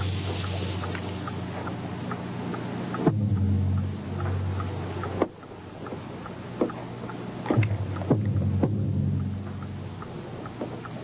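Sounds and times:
low droning hum: 0.0s - 11.0s
sharp knocks: 7.5s - 9.6s.

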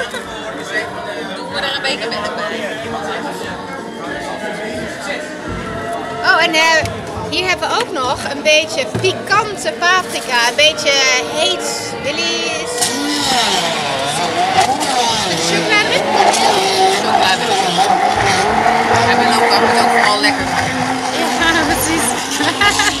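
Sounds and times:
stick blender motor whine: 11.4s - 23.0s.

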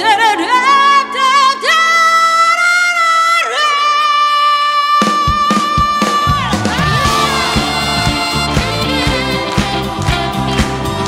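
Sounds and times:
quiet band accompaniment: 5.0s - 11.0s.

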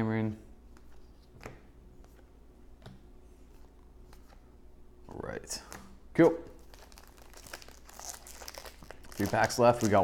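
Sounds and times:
foil wrapper crinkling: 6.6s - 10.0s.

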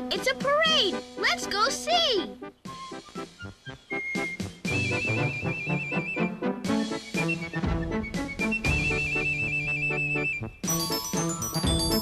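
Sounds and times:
marching band music: 2.7s - 12.0s.

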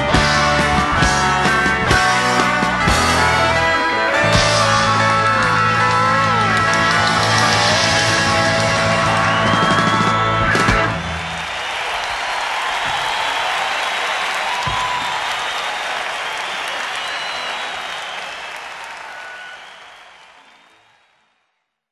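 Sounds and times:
audience applauding: 0.0s - 21.6s.

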